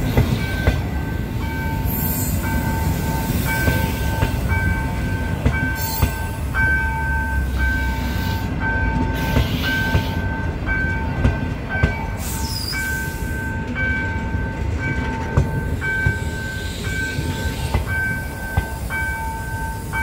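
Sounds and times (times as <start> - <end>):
train rolling past: 0.0 - 20.0.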